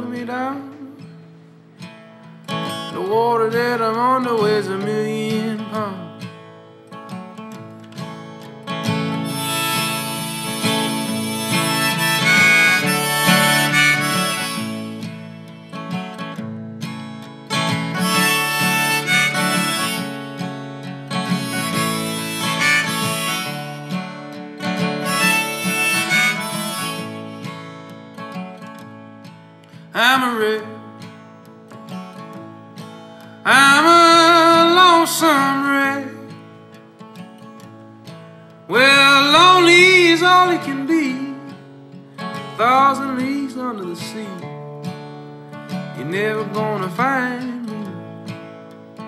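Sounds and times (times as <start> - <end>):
strummed acoustic guitar: 0.0 - 49.0
harmonica solo: 9.0 - 16.0, 17.6 - 27.9.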